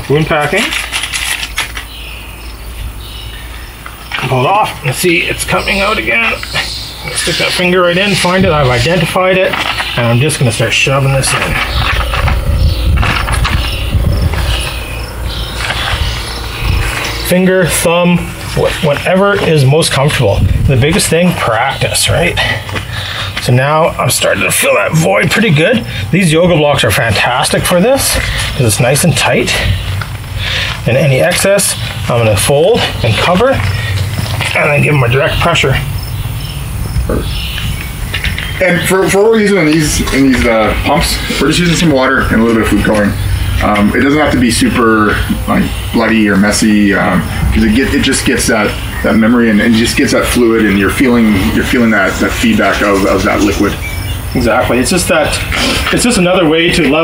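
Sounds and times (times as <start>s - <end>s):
constant low rumble: 0.0s - 57.0s
insects chirping: 0.0s - 57.0s.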